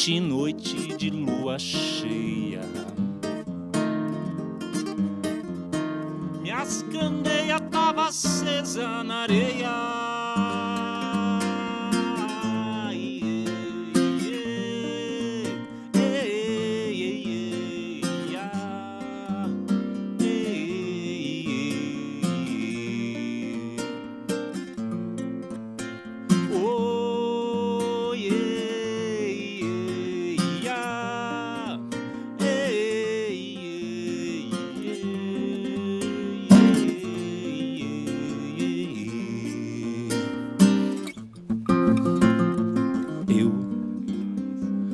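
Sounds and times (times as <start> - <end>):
man singing: 0.0 - 3.0, 6.4 - 24.4, 26.4 - 41.0, 43.0 - 43.9
classical guitar fingerstyle: 0.0 - 44.9.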